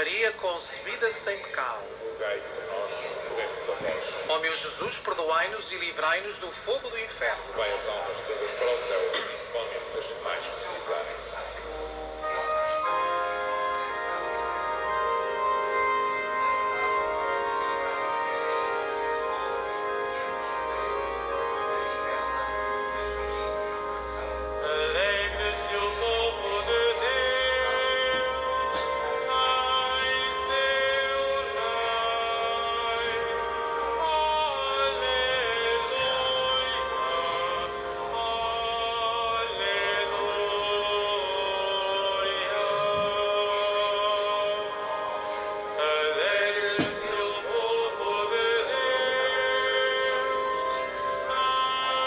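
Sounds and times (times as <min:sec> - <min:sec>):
held instrumental chords: 0:00.0 - 0:52.0
steady musical accompaniment: 0:00.0 - 0:52.0
voices singing a hymn: 0:00.0 - 0:52.0.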